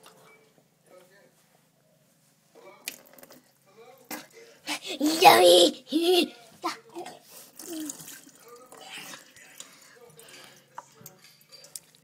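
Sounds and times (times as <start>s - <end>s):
child's quiet voice: 4.9s - 8.0s.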